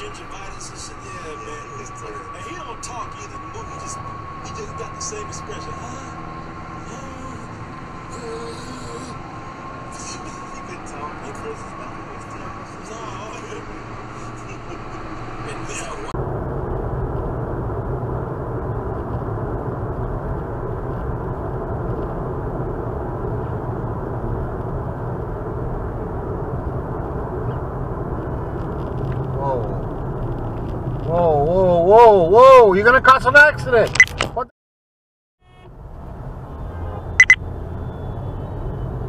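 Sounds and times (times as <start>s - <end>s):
car road and engine noise: 0.0s - 34.5s, 35.4s - 39.0s
person speaking: 6.9s - 7.5s, 8.1s - 9.2s.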